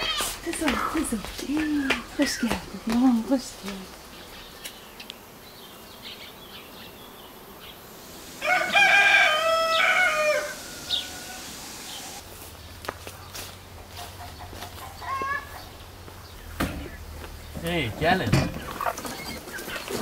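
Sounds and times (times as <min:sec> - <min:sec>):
rooster crowing: 0:08.2 - 0:12.2.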